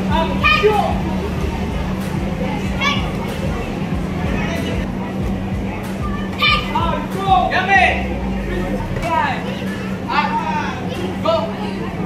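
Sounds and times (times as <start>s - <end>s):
children calling out: 0.0s - 4.9s, 5.8s - 7.5s
steady low hum: 0.0s - 12.0s.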